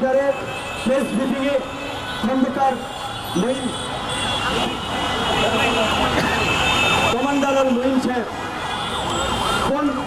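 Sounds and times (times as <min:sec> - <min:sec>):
crowd voices: 0:00.0 - 0:10.0
traffic rumble: 0:00.0 - 0:10.0.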